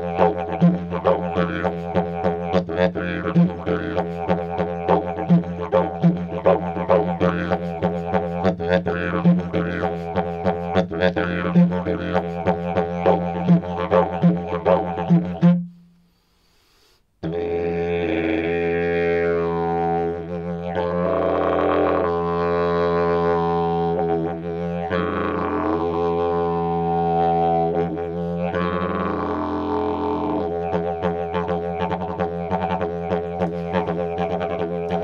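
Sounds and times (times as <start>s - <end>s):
didgeridoo drone: 0.0s - 15.5s, 17.2s - 35.0s.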